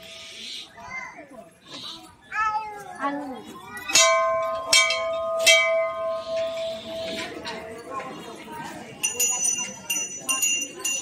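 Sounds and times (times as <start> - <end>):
temple bell ringing: 3.8 - 11.0.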